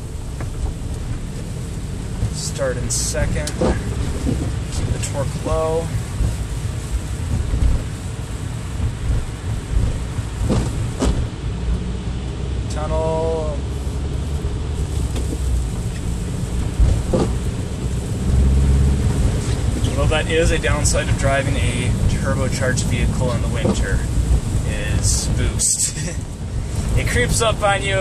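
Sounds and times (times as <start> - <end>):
car engine and tyre rumble: 0.0 - 28.0.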